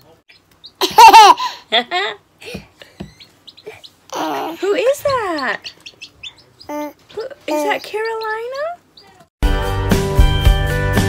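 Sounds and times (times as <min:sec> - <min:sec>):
baby laughing and giggling: 0:00.8 - 0:01.6, 0:03.6 - 0:04.7, 0:06.7 - 0:07.8.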